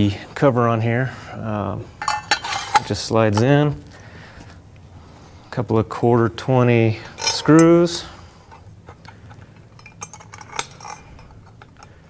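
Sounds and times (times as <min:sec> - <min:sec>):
metal screws clinking: 0:02.0 - 0:02.9, 0:07.0 - 0:11.9.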